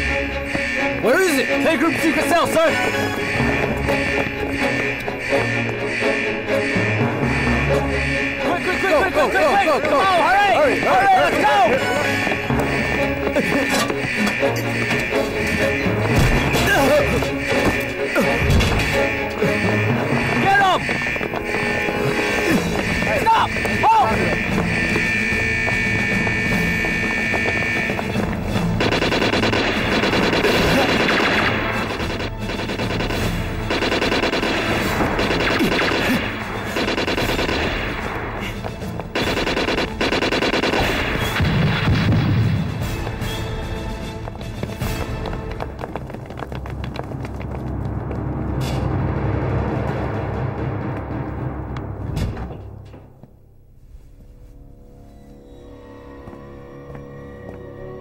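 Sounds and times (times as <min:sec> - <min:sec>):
dramatic film score: 0:00.0 - 0:58.0
gunshots: 0:12.6 - 0:42.9
machine-gun bursts: 0:28.8 - 0:38.0, 0:39.2 - 0:41.0.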